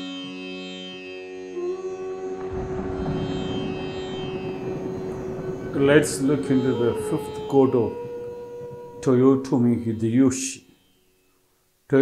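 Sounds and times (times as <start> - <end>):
sitar drone: 0.0 - 12.0
man's voice: 5.7 - 8.3, 9.0 - 10.6.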